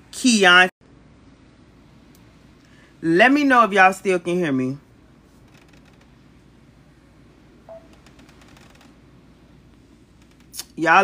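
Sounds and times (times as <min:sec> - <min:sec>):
steady low hiss: 0:00.0 - 0:11.0
brief short tone: 0:07.7 - 0:08.0.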